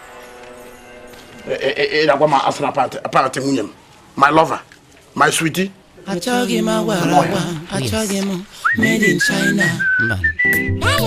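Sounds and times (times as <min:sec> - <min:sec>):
person speaking: 0:01.4 - 0:09.8
high whistled melody: 0:08.6 - 0:11.0.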